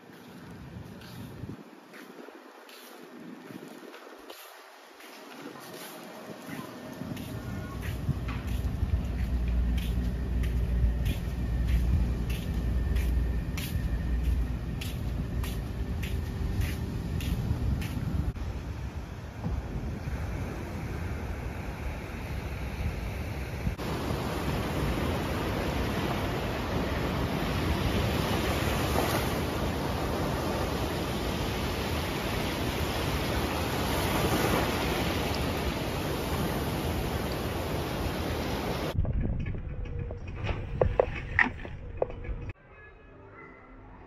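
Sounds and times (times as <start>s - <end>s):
waves washing on sandy beach: 0.0s - 39.0s
wind on microphone: 0.0s - 42.6s.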